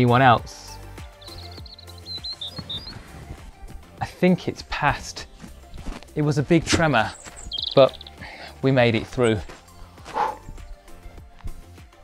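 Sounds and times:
background music: 0:00.0 - 0:12.0
high chirp-like notes: 0:07.1 - 0:08.2.

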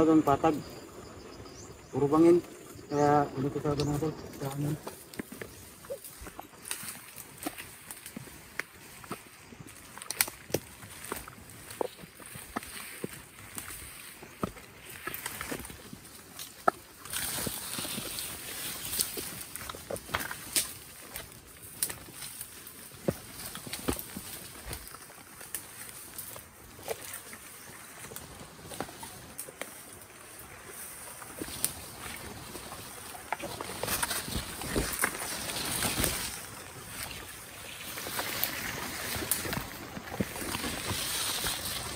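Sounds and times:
leaves rustling: 0:00.0 - 0:41.9
footsteps through undergrowth: 0:00.6 - 0:41.9
brushing through foliage: 0:03.4 - 0:41.9
twigs snapping: 0:03.7 - 0:41.9.

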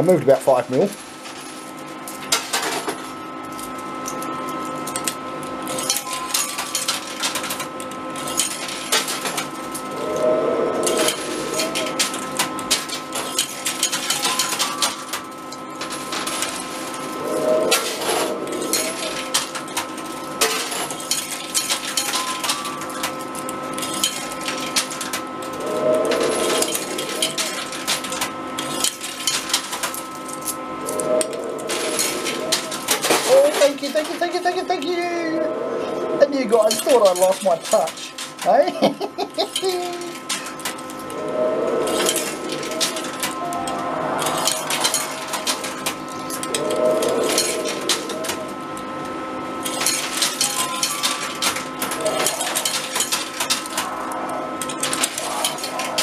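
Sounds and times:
arcade hum of held tones: 0:00.0 - 0:56.0
coins clinking and clattering: 0:00.9 - 0:09.9, 0:10.8 - 0:34.9, 0:36.6 - 0:38.5, 0:39.2 - 0:41.1, 0:41.8 - 0:48.4, 0:49.6 - 0:54.0.

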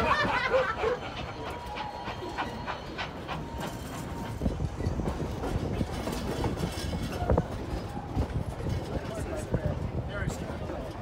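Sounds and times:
train cars rumbling on track: 0:00.0 - 0:11.0
wheels clacking over rail joints: 0:00.0 - 0:11.0.

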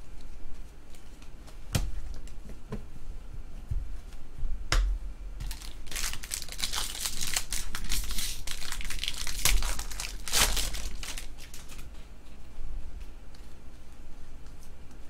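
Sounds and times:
foil wrapper tearing and crinkling: 0:05.4 - 0:11.9.

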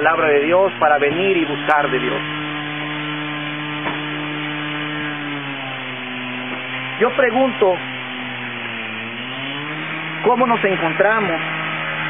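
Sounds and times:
motor droning hum: 0:00.0 - 0:12.0.

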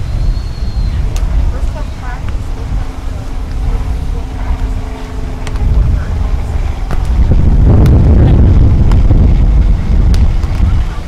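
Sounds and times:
faint distant voices: 0:00.0 - 0:11.0
faint steady hum: 0:00.0 - 0:11.0
wind buffeting microphone: 0:00.0 - 0:11.0.

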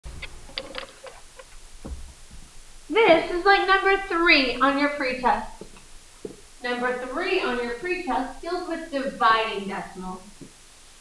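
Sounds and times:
soft low thump: 0:01.8 - 0:02.6.

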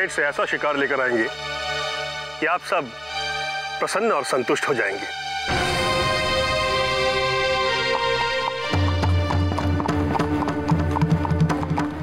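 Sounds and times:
background music with low drone: 0:00.0 - 0:12.0
horse hooves clip-clopping: 0:07.0 - 0:12.0.

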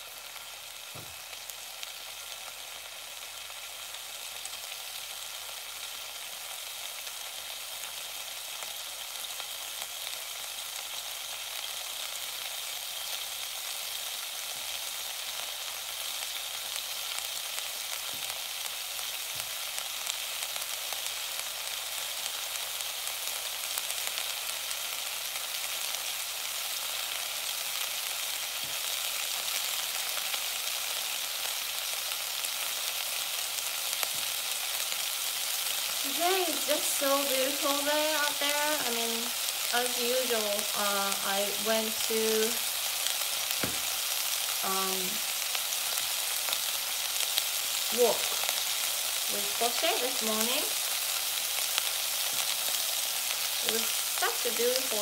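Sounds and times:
vegetables sizzling in oil: 0:00.0 - 0:55.0.

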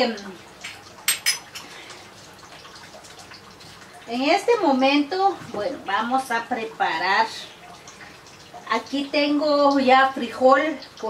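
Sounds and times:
metal utensils clinking: 0:01.1 - 0:01.6.

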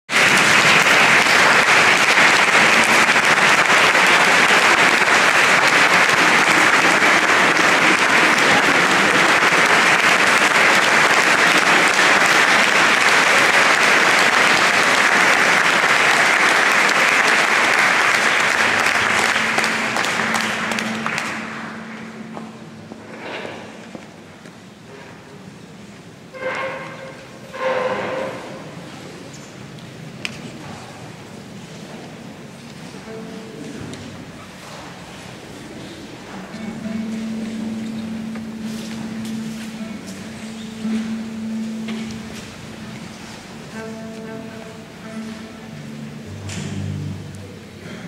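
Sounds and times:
audience applauding: 0:00.1 - 0:23.1, 0:36.2 - 0:43.8.

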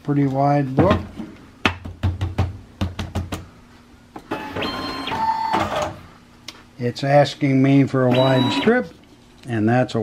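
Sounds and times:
binding machine whine: 0:04.3 - 0:06.0, 0:08.0 - 0:08.9.

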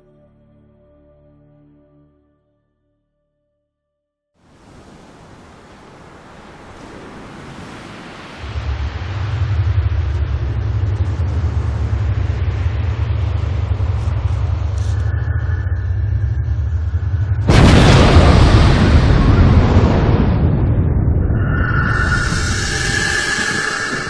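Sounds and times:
wind: 0:04.4 - 0:24.0
deep rumble: 0:08.4 - 0:24.0.

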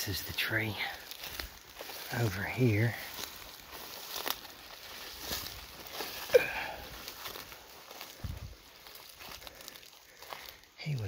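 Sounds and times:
footsteps through grass and leaves: 0:00.0 - 0:11.0.

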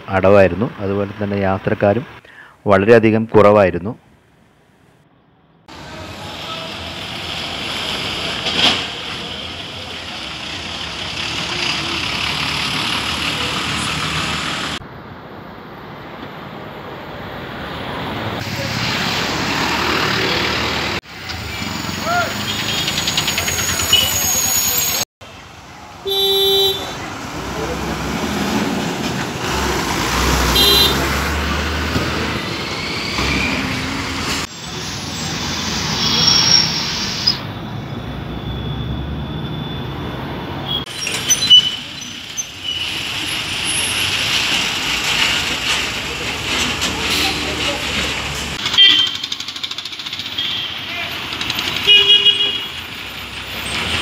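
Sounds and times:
road traffic engine noise: 0:00.0 - 0:03.0, 0:03.9 - 0:54.0
vehicle horn toot: 0:26.0 - 0:27.0, 0:30.6 - 0:31.0, 0:48.7 - 0:49.3, 0:50.4 - 0:50.8, 0:51.8 - 0:52.8.

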